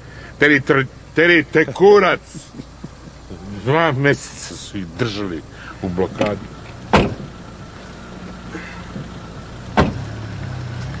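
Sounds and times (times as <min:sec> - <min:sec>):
steady low motor hum: 0:00.0 - 0:11.0
sharp thumps: 0:06.1 - 0:10.2.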